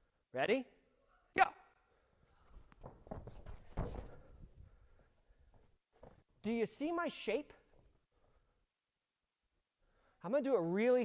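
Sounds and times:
hands and feet thudding on a mat: 2.6s - 4.6s.

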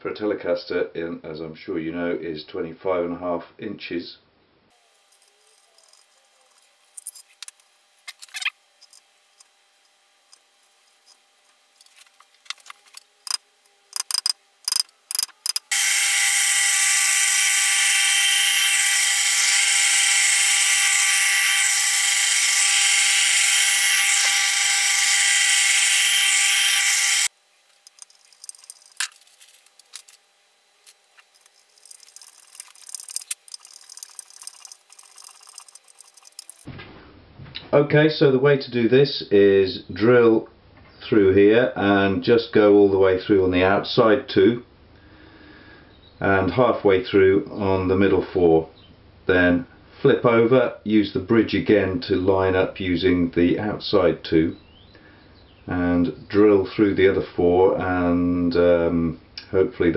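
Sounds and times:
drill press motor running: 11.8s - 30.2s, 30.8s - 36.7s
taps and clicks on workpiece: 14.0s - 15.7s.

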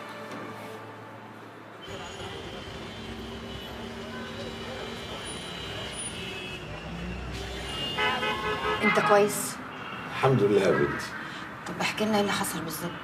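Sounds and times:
road traffic hum: 0.0s - 13.0s.

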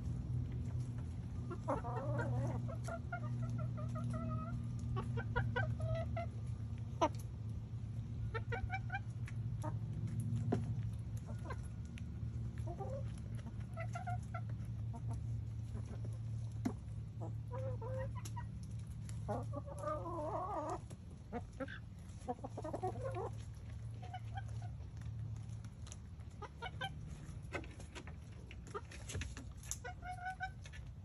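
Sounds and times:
hens clucking: 0.0s - 31.0s.

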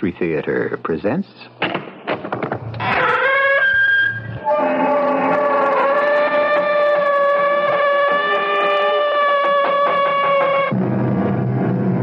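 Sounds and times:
door creaking open: 1.6s - 10.8s.

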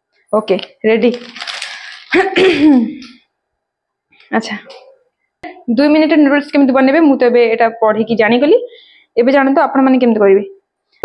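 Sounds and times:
woman's voice: 0.3s - 1.4s, 4.3s - 10.6s
plastic packet crinkling: 1.0s - 2.4s.

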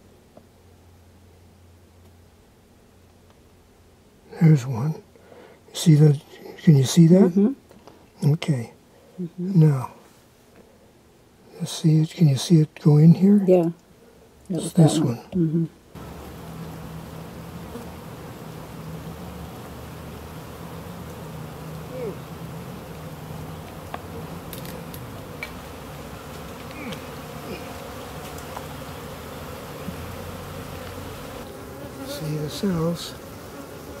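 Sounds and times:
honeybees buzzing: 15.9s - 34.0s.

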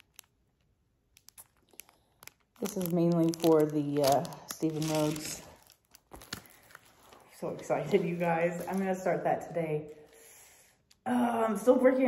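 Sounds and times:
plastic bag crinkling: 0.0s - 9.3s.

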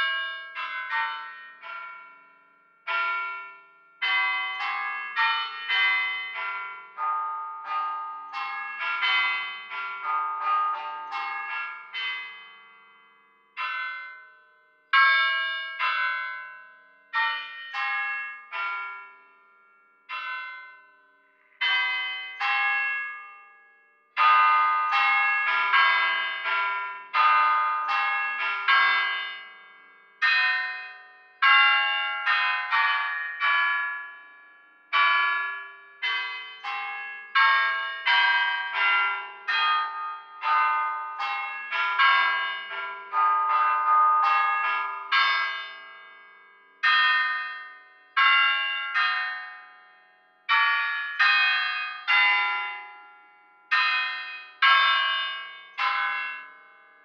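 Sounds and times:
bells playing a melody: 4.0s - 13.0s, 13.6s - 18.9s, 21.6s - 23.4s, 24.2s - 29.6s, 30.2s - 34.1s, 34.9s - 49.8s, 50.5s - 53.0s, 53.7s - 56.6s.

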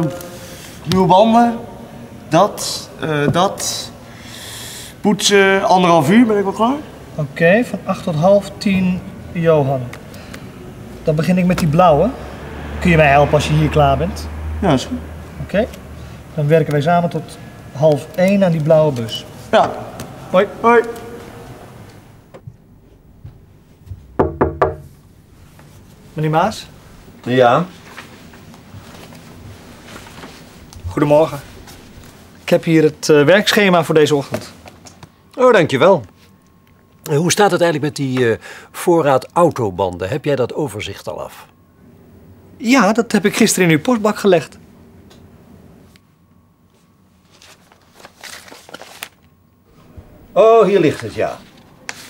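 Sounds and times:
papers rustling: 17.8s - 21.4s, 27.7s - 32.6s, 46.8s - 49.9s, 50.6s - 52.0s
knocks on a door: 23.9s - 24.9s.

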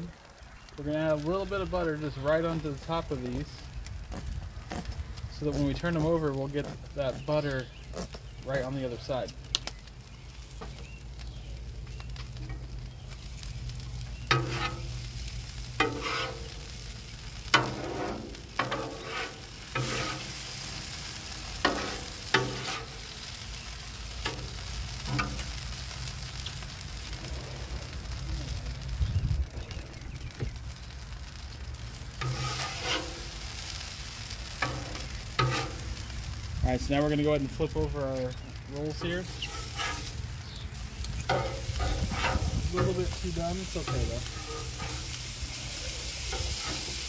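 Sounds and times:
apples sizzling on a griddle: 0.0s - 47.0s
metal spatula scraping griddle: 14.3s - 23.1s, 32.1s - 33.9s, 34.5s - 36.1s, 38.9s - 47.0s.

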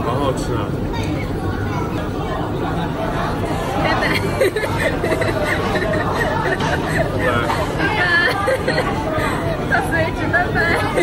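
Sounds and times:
people speaking: 0.0s - 11.0s
restaurant background babble: 0.0s - 11.0s.

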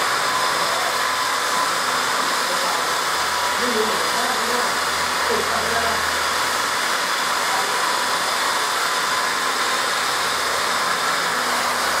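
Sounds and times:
electric car polishers whirring: 0.0s - 12.0s.

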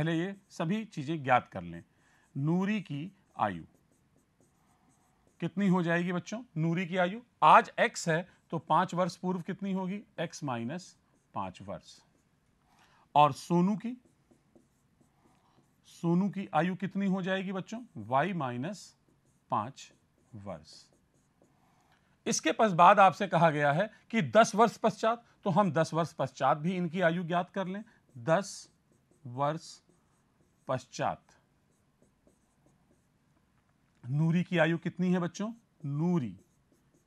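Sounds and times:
stylus scratching on tablet: 0.0s - 37.0s
pen writing on board: 2.4s - 6.2s, 11.0s - 23.4s, 26.0s - 33.7s, 34.4s - 37.0s.

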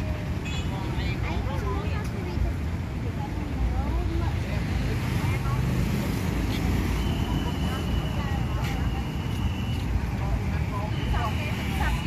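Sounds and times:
motorcycles and cars passing: 0.0s - 12.0s.

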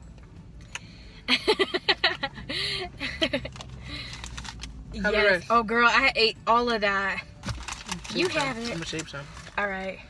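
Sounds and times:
low steady hum: 0.0s - 10.0s
woman laughing: 1.3s - 3.5s.

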